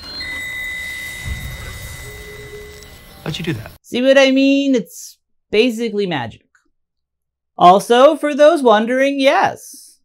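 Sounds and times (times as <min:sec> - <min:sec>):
steady high electronic tone: 0:00.0 - 0:03.8
low rumble: 0:01.2 - 0:03.8.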